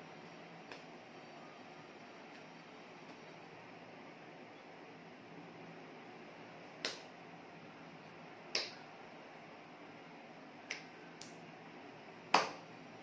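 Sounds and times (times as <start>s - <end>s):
low steady hiss: 0.0s - 13.0s
hands slapping: 0.6s - 1.0s, 6.8s - 7.1s, 8.5s - 8.8s, 10.6s - 11.4s, 12.3s - 12.6s.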